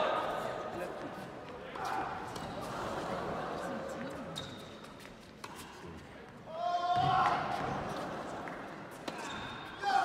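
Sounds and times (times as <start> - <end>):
crowd chatter: 0.0 - 6.6.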